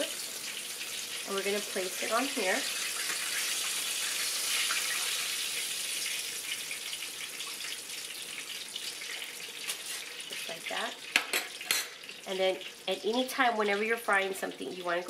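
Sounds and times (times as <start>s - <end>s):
hot oil sizzling in a frying pan: 0.0s - 15.0s.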